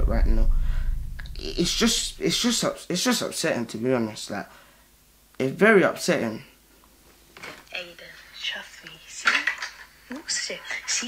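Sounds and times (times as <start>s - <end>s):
person speaking in room: 0.0s - 6.6s.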